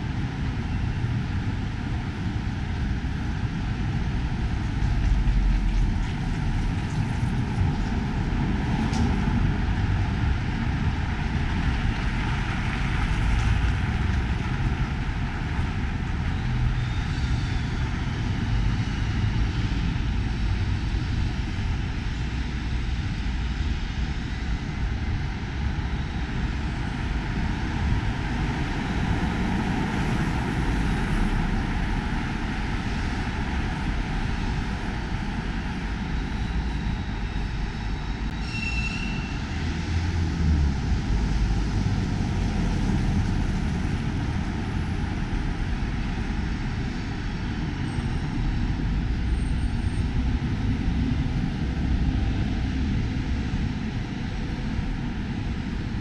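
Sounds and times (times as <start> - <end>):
low rumble of traffic: 0.0 - 56.0
short high squeak: 38.3 - 39.4.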